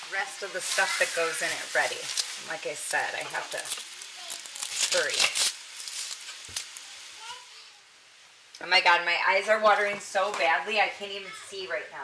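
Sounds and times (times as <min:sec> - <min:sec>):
meat sizzling in a pan: 0:00.0 - 0:08.5.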